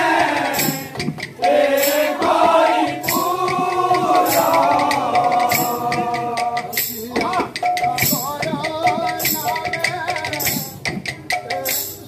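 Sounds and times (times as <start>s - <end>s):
group singing: 0.0s - 7.0s
barrel drums: 0.0s - 12.0s
jingling hand percussion: 0.0s - 12.0s.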